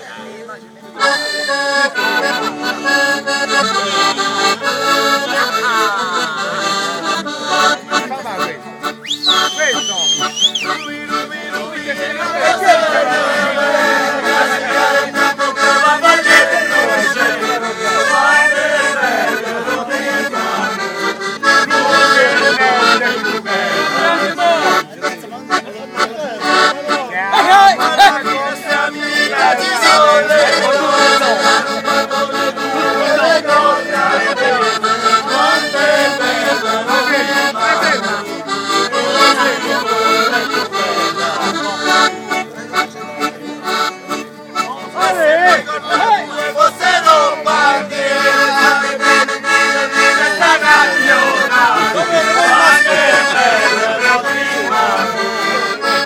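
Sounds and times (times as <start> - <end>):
acoustic guitar: 0.0 - 56.0
piano accordion: 0.0 - 56.0
men singing: 2.0 - 6.8, 10.6 - 24.8, 27.4 - 41.6, 44.9 - 56.0.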